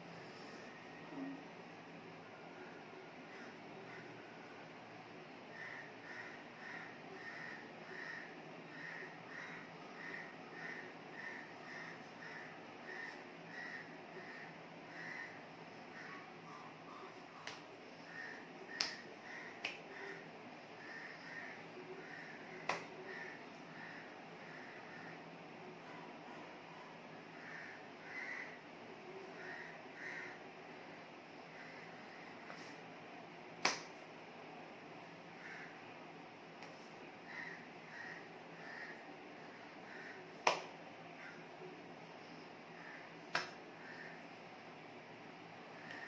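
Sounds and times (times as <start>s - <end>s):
faint room hiss: 0.0s - 46.0s
hands clapping together: 17.4s - 17.7s, 18.8s - 19.9s, 22.6s - 22.9s, 33.6s - 33.9s, 40.4s - 40.8s, 43.3s - 43.6s.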